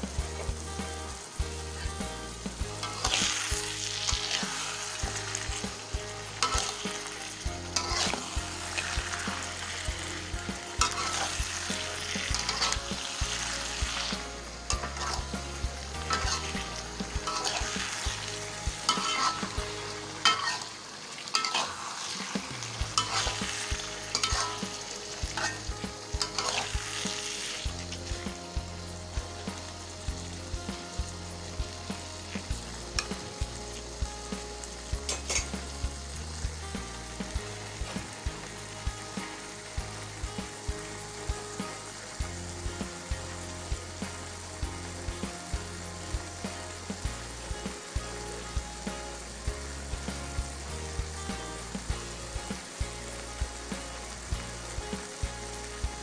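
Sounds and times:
metal spatula scraping wok: 0.0s - 28.5s, 32.3s - 34.0s, 35.0s - 35.7s
food sizzling: 0.0s - 56.0s.

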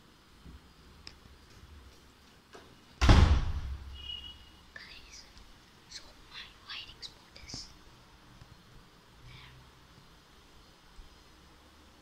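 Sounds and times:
loud thump: 3.0s - 3.9s
child whispering: 4.7s - 7.8s, 9.2s - 9.7s.

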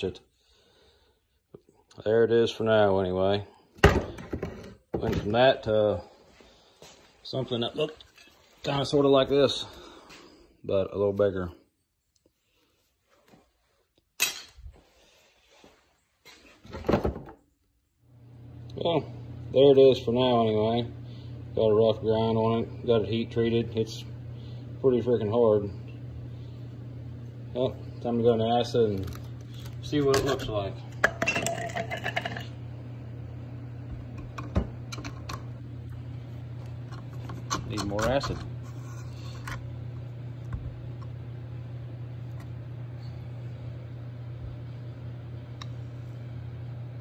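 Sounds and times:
steady low hum: 17.4s - 47.0s.

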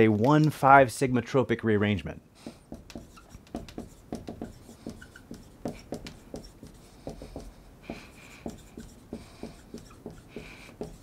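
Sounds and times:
marker writing on whiteboard: 2.4s - 11.0s
marker tip squeaks: 2.9s - 6.7s.

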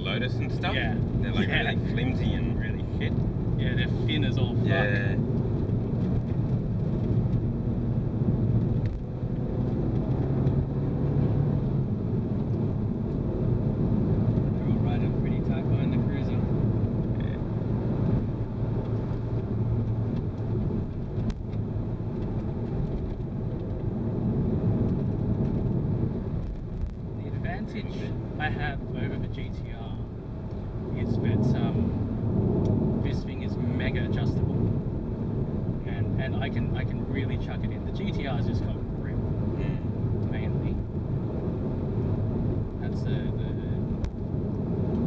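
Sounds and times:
car engine accelerating: 0.0s - 45.0s
tyre and road noise: 0.0s - 45.0s.

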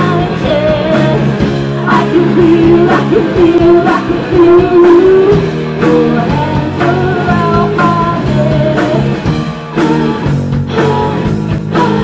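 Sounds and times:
drum and cymbal hits: 0.0s - 12.0s
rock band playing: 0.0s - 12.0s
woman singing long notes: 1.9s - 9.0s.

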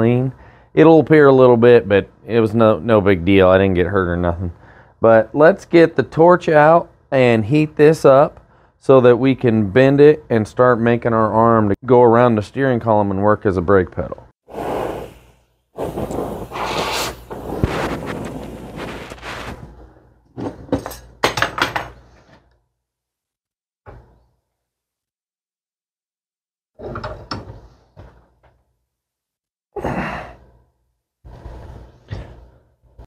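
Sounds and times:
torch flame roaring: 14.5s - 19.9s
clunks and knocks of metal: 26.8s - 28.5s.

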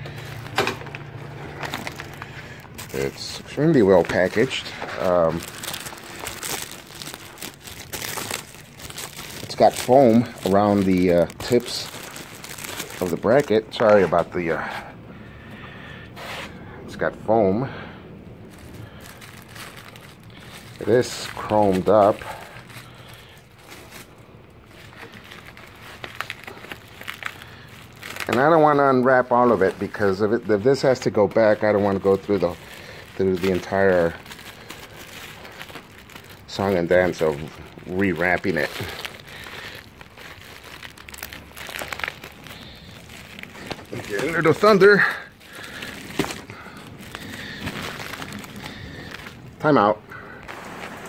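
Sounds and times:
plastic wrapping crinkling: 0.0s - 15.6s, 18.4s - 51.0s.

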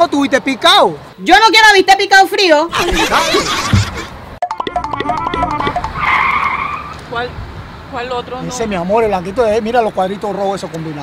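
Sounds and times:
busy comic music: 2.8s - 6.2s
tire screech skid effect: 5.5s - 7.2s.

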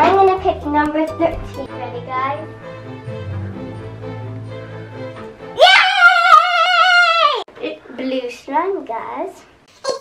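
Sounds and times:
girl speaking: 0.0s - 2.5s, 7.2s - 9.5s.

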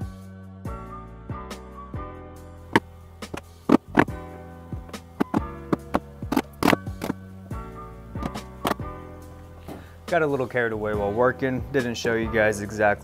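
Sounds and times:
chisel knocking into plywood: 5.2s - 7.2s.

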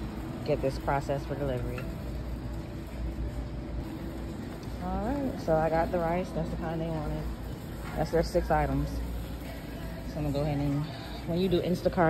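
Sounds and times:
supermarket background rumble: 0.0s - 12.0s.

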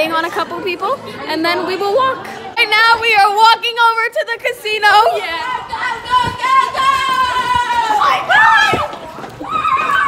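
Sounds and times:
girls squealing: 6.4s - 10.0s.

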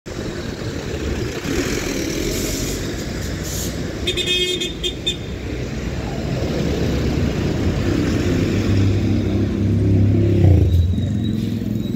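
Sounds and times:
surrounding bus traffic: 0.0s - 11.9s
bus diesel engine rumble: 0.1s - 11.9s
brief air hisses: 2.4s - 3.9s.

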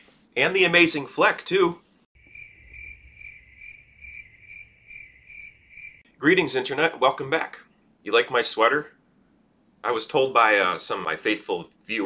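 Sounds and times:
crickets chirping: 2.2s - 6.1s.

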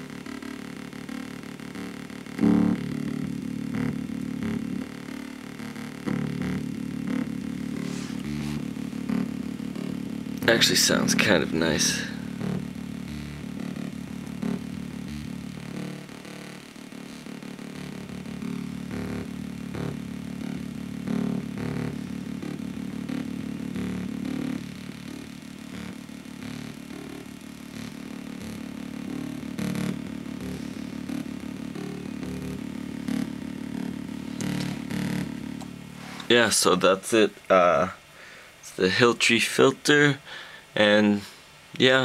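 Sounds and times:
bass-heavy low drone: 0.0s - 36.8s.

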